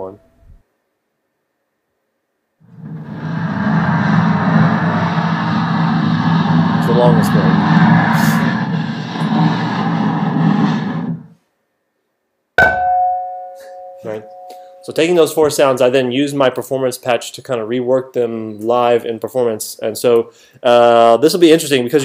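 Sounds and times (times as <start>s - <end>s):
sharp struck ringing tone: 12.6s - 15.3s
dense steady sound: 12.6s - 16.0s.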